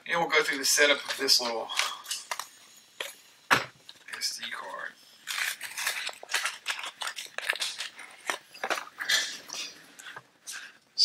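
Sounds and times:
plastic clicks and rustles: 0:05.3 - 0:10.6.

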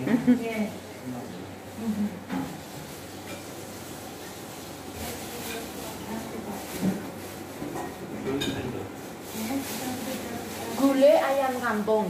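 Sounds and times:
dishes and cutlery clinking: 0:07.6 - 0:08.8.

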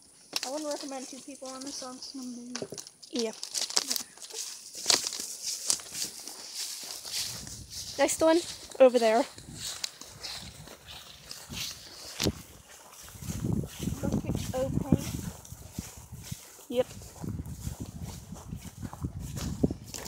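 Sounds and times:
footsteps through dry grass: 0:00.0 - 0:20.0
microphone handling noise: 0:13.1 - 0:20.0.

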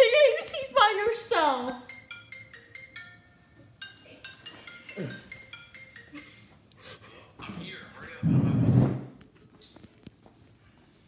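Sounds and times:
bell-like mallet melody: 0:01.8 - 0:06.6.

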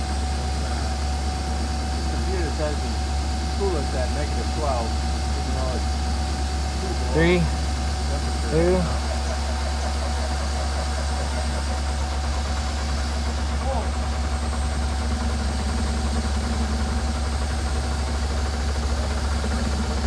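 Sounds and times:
vehicle engine idling: 0:00.0 - 0:20.0.

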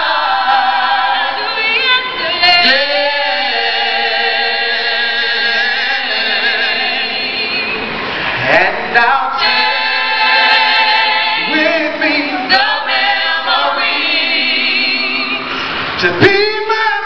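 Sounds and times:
vocal group singing close harmony: 0:00.0 - 0:16.3.

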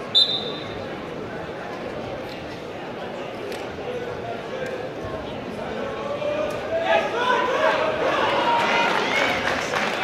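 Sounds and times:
crowd shouting and cheering: 0:06.0 - 0:10.0.

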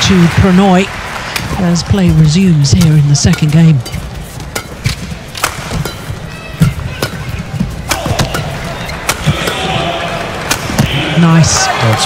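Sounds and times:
arena crowd noise: 0:00.0 - 0:12.0
rackets hitting shuttlecock: 0:01.1 - 0:11.2.

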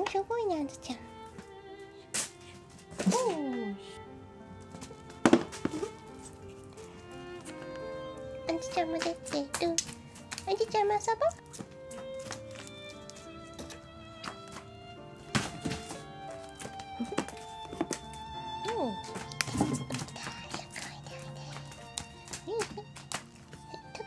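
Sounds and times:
background music with held notes: 0:00.0 - 0:24.0
cats landing on wooden floor: 0:15.3 - 0:18.2, 0:19.0 - 0:20.4.

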